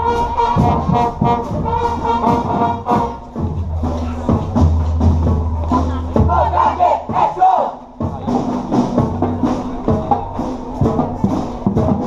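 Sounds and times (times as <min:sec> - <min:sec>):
brass holding low note: 0:00.0 - 0:06.1
marching drums: 0:00.0 - 0:12.0
group of voices shouting: 0:06.2 - 0:07.8.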